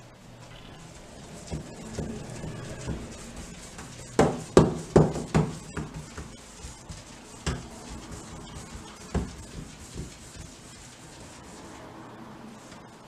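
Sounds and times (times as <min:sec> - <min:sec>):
paintbrush strokes on wood: 0:00.2 - 0:13.0.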